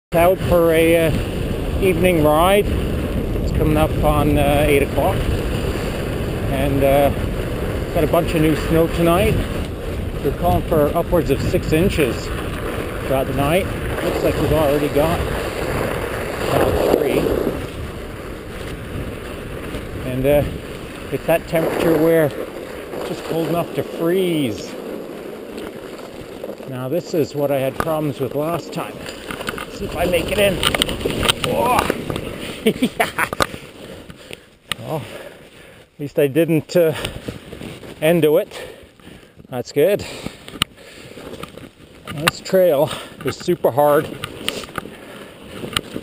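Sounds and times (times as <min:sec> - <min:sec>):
bike tyres rolling on snow: 0:00.1 - 0:46.0
wind rumbling on microphone: 0:00.1 - 0:46.0.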